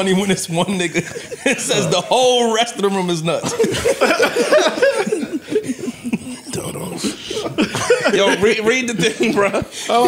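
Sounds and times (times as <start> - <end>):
people laughing: 0.6 - 10.0
person coughing: 4.8 - 8.5.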